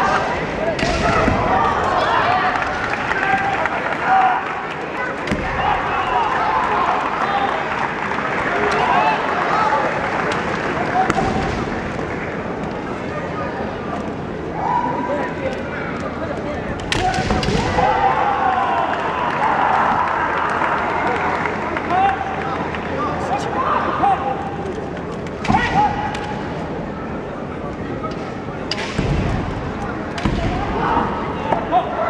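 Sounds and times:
hubbub of voices: 0:00.0 - 0:32.0.

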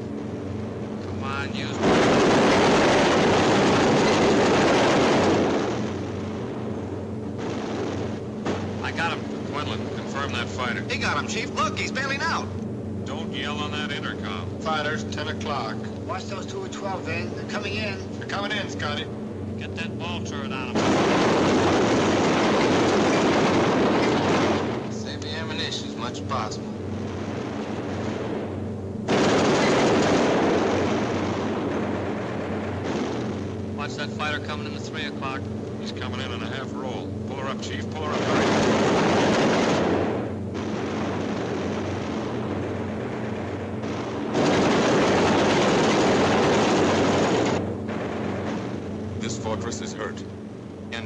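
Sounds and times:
aircraft engines droning: 0:00.0 - 0:51.0
machine-gun fire: 0:01.6 - 0:11.8, 0:20.7 - 0:25.8, 0:27.0 - 0:35.1, 0:37.4 - 0:50.1.

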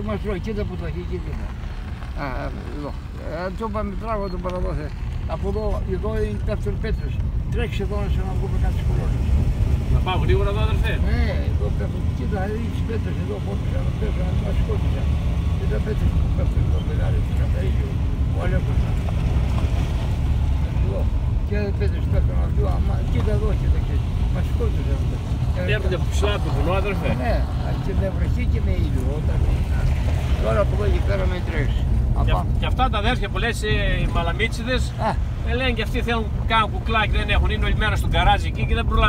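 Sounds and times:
car engine and tyres rumbling: 0:00.0 - 0:39.0.

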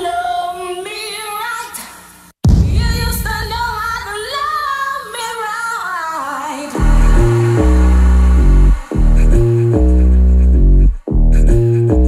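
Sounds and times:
woman singing pop song: 0:00.0 - 0:02.0, 0:02.7 - 0:09.0.

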